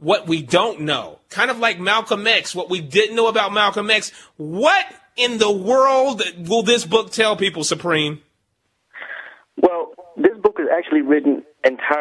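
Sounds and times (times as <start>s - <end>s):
man speaking over telephone: 9.6s - 12.0s.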